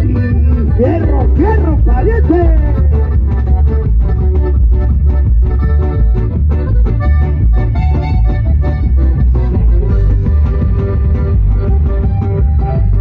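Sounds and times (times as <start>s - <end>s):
live band playing dance music: 0.0s - 13.0s.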